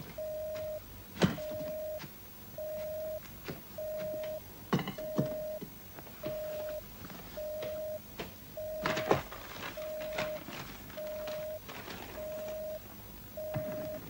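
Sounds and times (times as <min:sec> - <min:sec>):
telephone busy signal: 0:00.1 - 0:03.2, 0:03.8 - 0:04.4, 0:05.0 - 0:05.6, 0:06.2 - 0:08.0, 0:08.6 - 0:12.8, 0:13.4 - 0:14.0
knocks of objects being handled: 0:00.5 - 0:06.8.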